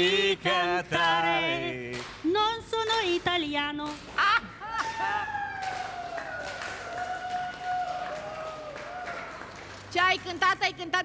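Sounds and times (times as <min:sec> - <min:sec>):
scattered claps: 0:01.9 - 0:02.2, 0:05.6 - 0:10.3.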